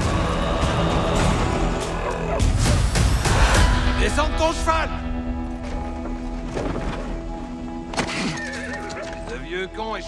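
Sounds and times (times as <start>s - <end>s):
dramatic trailer music: 0.0s - 10.0s
horse whinnying: 8.0s - 9.2s.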